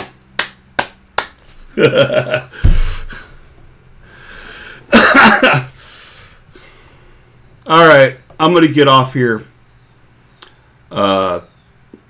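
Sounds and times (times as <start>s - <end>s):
sharp hand smacks: 0.0s - 1.5s
dull low thump: 2.5s - 3.2s.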